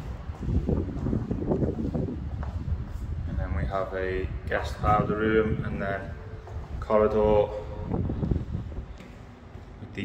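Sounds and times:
microphone rumbling and buffeting: 0:00.0 - 0:10.0.

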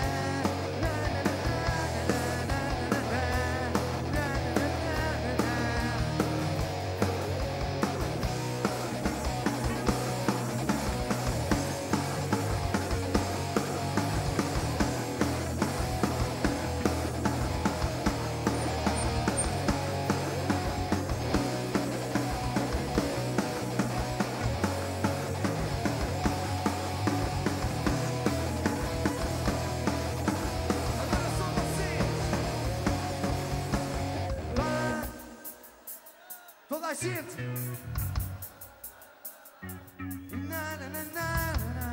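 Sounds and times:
bass guitar: 0:00.0 - 0:35.4, 0:37.0 - 0:38.6, 0:39.6 - 0:41.9
electric guitars: 0:00.0 - 0:36.2, 0:36.8 - 0:41.9
drums on a steady beat: 0:00.0 - 0:41.9.

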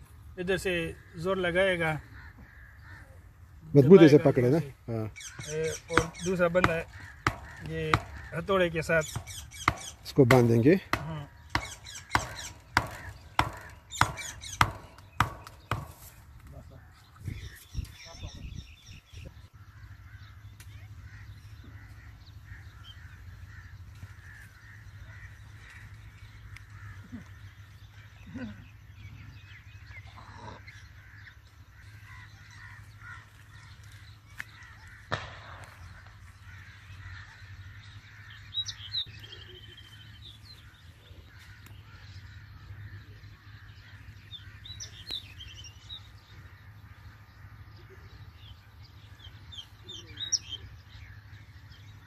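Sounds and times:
birds chirping: 0:00.0 - 0:52.0.

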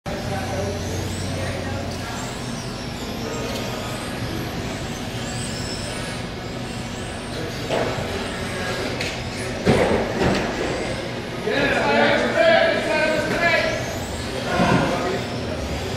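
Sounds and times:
electric toy car motors whining: 0:00.1 - 0:15.9
steady hum: 0:00.1 - 0:15.9.

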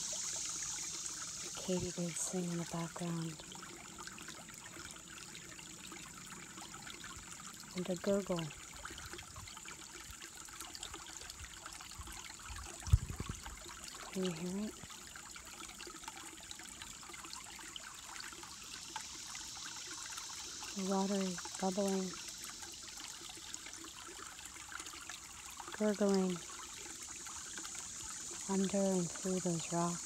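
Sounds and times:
creek trickling over rocks: 0:00.0 - 0:30.0.

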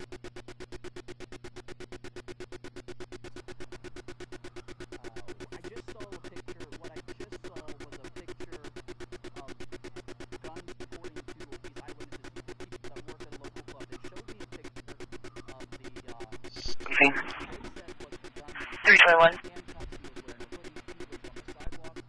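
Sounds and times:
steady low hum: 0:00.0 - 0:22.0
electronic pulsing tone: 0:11.8 - 0:22.0.

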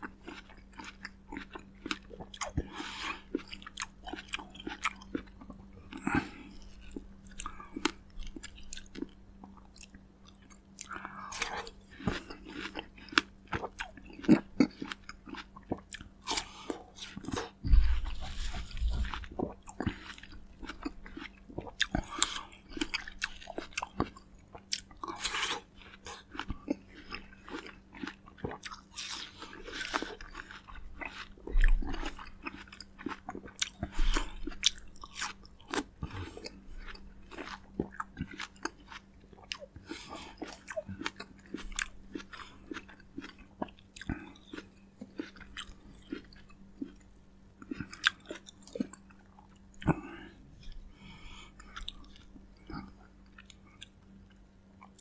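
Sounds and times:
crisp fruit bites and chewing: 0:00.0 - 0:55.0
faint steady hum: 0:00.0 - 0:55.0
low thuds: 0:17.6 - 0:19.5.

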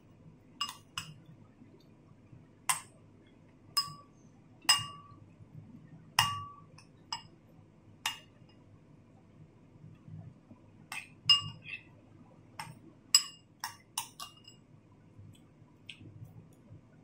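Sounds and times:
metal spoon clinking on ceramic bowl: 0:00.6 - 0:01.2, 0:03.8 - 0:04.1, 0:04.7 - 0:05.2, 0:06.2 - 0:07.3, 0:10.9 - 0:11.7, 0:12.6 - 0:14.6.

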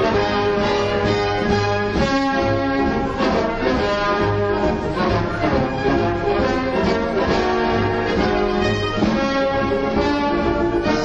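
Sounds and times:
orchestral music with brass: 0:00.0 - 0:11.0.

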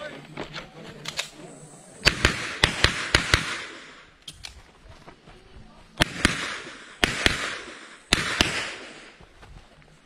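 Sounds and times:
pistol shots with echo: 0:02.0 - 0:04.1, 0:06.0 - 0:09.2.

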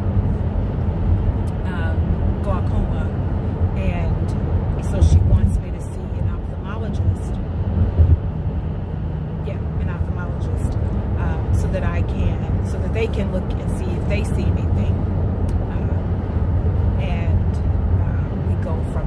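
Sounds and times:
car rumble inside cabin: 0:00.0 - 0:19.0.

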